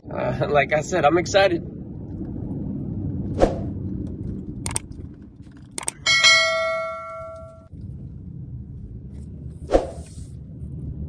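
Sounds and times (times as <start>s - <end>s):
low car road noise: 0.0s - 11.0s
sharp clicks: 4.6s - 5.0s, 5.6s - 6.0s
bright bell ding: 6.1s - 7.6s.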